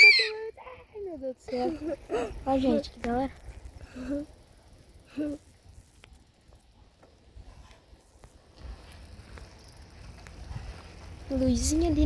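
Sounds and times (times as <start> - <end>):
faint low rumble: 1.2 - 12.0.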